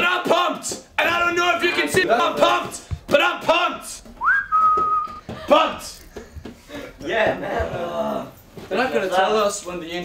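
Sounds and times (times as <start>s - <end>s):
person whistling: 4.2s - 5.2s.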